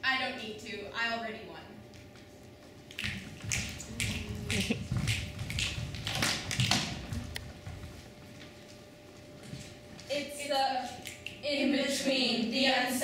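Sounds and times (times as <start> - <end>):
footsteps on wooden stage: 2.0 - 10.3.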